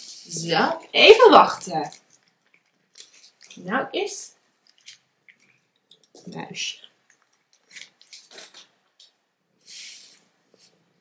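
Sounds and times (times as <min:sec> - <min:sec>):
cats chewing treats: 0:01.9 - 0:03.6, 0:06.9 - 0:09.1.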